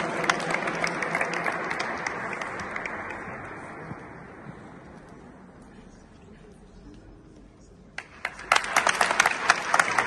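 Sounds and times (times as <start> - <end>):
audience applause: 0.0 - 3.9, 8.0 - 10.0.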